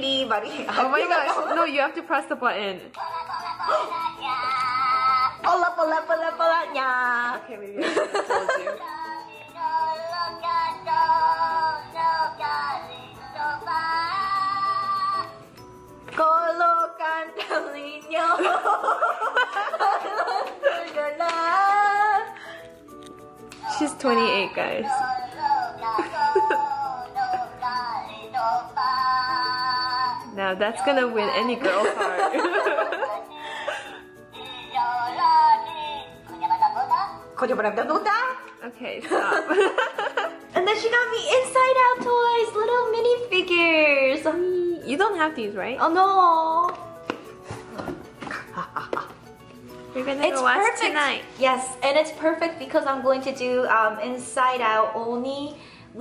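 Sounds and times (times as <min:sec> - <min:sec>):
toy electronic singing over music: 0:03.0 - 0:06.7, 0:08.3 - 0:15.7, 0:23.6 - 0:30.4, 0:32.6 - 0:37.4.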